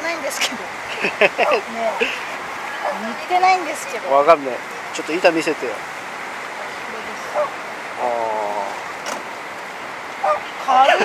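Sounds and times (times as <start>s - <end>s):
steady rushing background noise: 0.0s - 11.0s.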